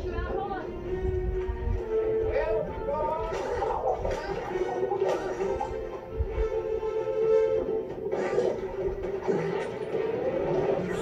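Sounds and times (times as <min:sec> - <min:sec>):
animated film music: 0:00.0 - 0:11.0.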